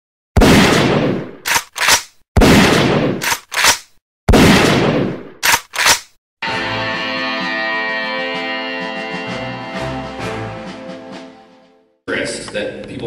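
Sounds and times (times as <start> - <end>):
quick sharp clicks: 1.4 - 2.2, 3.2 - 4.0, 5.4 - 6.2.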